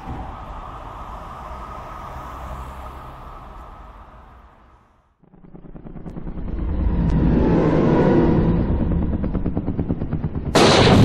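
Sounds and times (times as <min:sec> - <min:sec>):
loud blast: 0:10.5 - 0:11.0.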